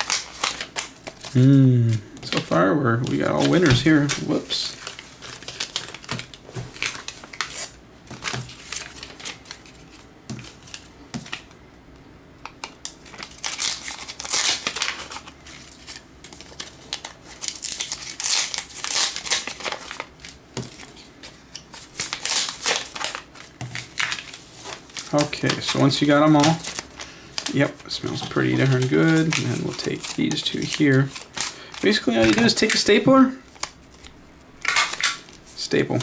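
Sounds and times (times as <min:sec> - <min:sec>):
paper strips rustling: 0:00.0 - 0:01.5, 0:02.2 - 0:11.5, 0:12.8 - 0:36.0.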